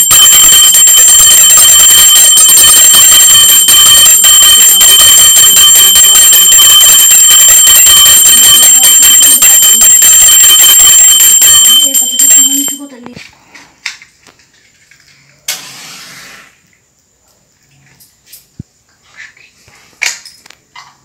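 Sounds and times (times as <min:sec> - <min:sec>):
hand bell ringing rapidly: 0:11.1 - 0:13.0.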